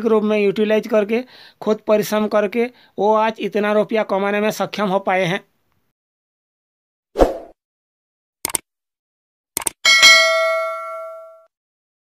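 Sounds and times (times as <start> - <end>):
quick clicks: 8.4 - 8.6, 9.6 - 9.8
bright bell ding: 9.8 - 11.5.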